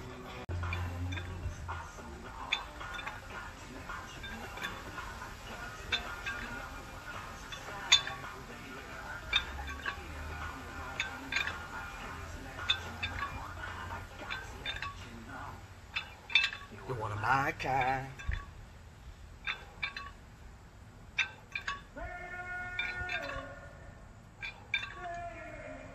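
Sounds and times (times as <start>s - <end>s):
music: 0.0s - 15.7s
weight plates clinking: 0.0s - 25.9s.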